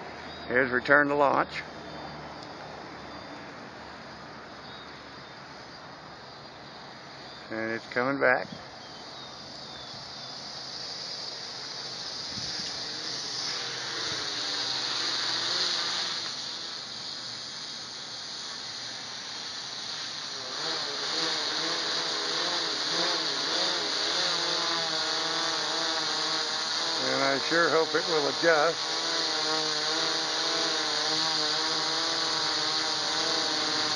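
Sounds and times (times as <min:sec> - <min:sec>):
quadcopter propellers buzzing: 0:07.5 - 0:33.9.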